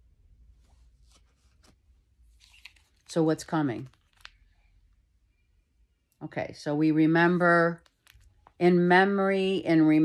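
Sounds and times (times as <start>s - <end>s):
cards rustling and snapping: 1.1s - 4.7s, 7.8s - 8.6s.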